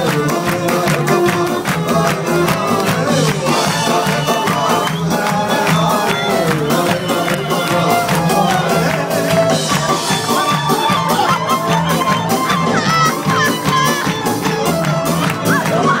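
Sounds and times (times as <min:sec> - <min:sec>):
person singing: 0:00.0 - 0:16.0
rock band playing: 0:00.0 - 0:16.0.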